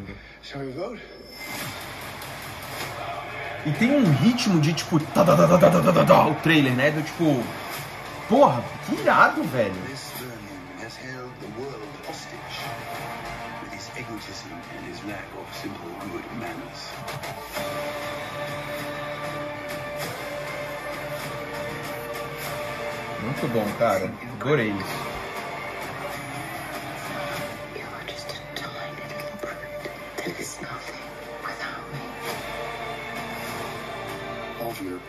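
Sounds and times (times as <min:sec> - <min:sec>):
trailer music: 0:01.3 - 0:35.0.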